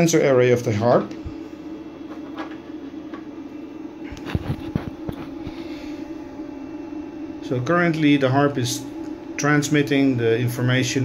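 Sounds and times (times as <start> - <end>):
electronic equipment humming: 0.0 - 11.0.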